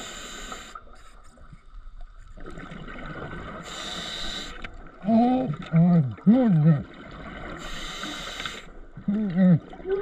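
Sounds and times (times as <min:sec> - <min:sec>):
inhale hiss through regulator: 0:00.0 - 0:01.3, 0:03.6 - 0:04.7, 0:07.6 - 0:08.7.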